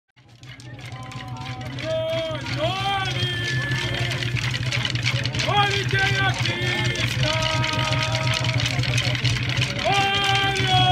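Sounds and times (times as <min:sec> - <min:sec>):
clatter of sharp strikes: 0:00.2 - 0:10.9
low drumming: 0:00.2 - 0:10.9
voices singing: 0:01.1 - 0:10.9.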